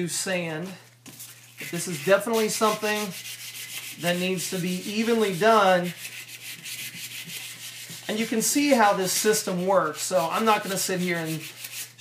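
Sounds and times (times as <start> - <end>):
sandpaper scratching metal shaft: 1.6 - 12.0.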